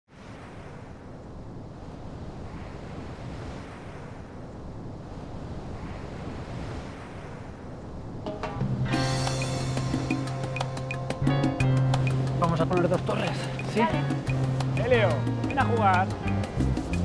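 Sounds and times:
ocean waves washing in: 0:00.1 - 0:17.0.

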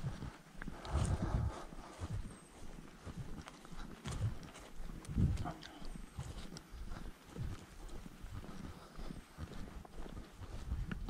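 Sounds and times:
footsteps on grassy dirt track: 0:00.0 - 0:11.0.

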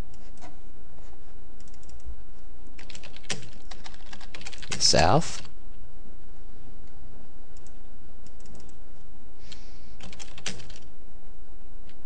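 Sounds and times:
steady low hum: 0:00.0 - 0:12.0
computer keyboard typing: 0:01.6 - 0:02.1, 0:02.8 - 0:05.5, 0:07.6 - 0:08.8, 0:10.0 - 0:10.9.

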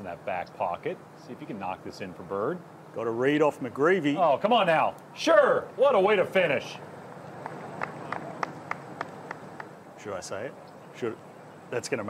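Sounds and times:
faint outdoor background: 0:00.0 - 0:12.0
light clapping: 0:07.4 - 0:09.8.

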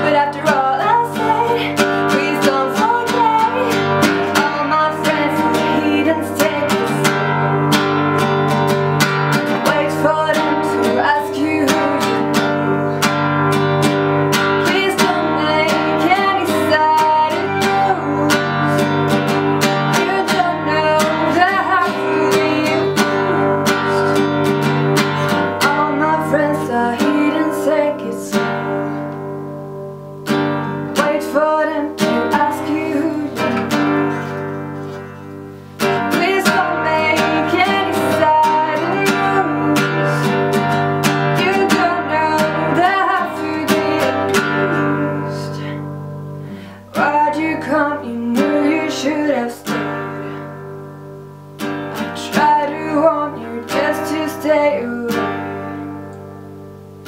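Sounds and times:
woman singing: 0:00.0 - 0:29.6, 0:30.3 - 0:46.2, 0:46.8 - 0:56.3
acoustic guitar strumming: 0:00.0 - 0:57.0.

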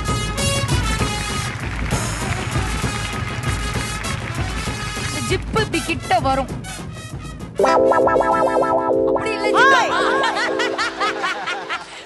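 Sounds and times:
backing music: 0:00.0 - 0:12.0
people laughing heartily: 0:09.8 - 0:12.0.

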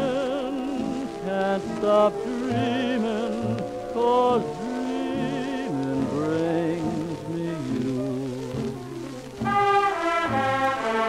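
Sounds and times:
record crackle and hiss: 0:00.0 - 0:11.0
big band swing orchestra: 0:09.4 - 0:11.0.

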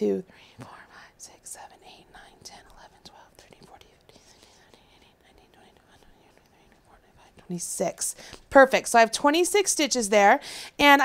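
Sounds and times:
woman whispering: 0:00.0 - 0:08.2.

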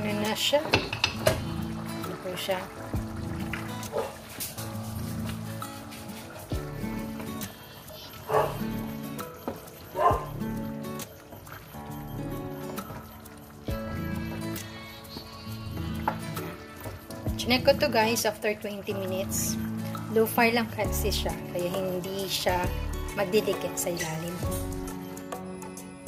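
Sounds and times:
background music with held chords: 0:00.0 - 0:26.0.

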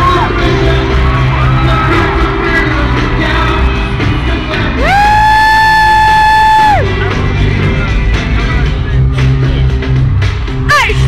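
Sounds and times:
live pop concert music: 0:00.0 - 0:11.0.

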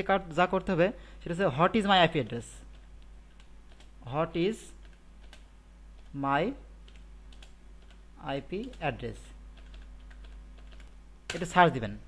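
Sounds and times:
computer keyboard typing: 0:02.7 - 0:04.0, 0:04.8 - 0:06.1, 0:06.8 - 0:08.0, 0:08.6 - 0:08.9, 0:09.5 - 0:11.6.

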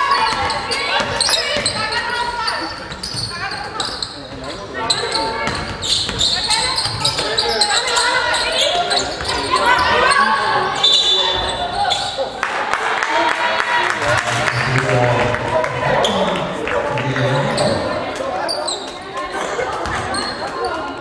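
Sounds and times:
basketball bouncing on wooden court: 0:00.2 - 0:01.9, 0:05.4 - 0:07.2.

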